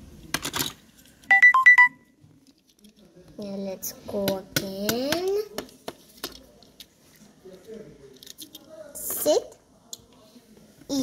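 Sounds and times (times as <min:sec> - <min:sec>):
electronic beeping tune: 0:01.3 - 0:02.0.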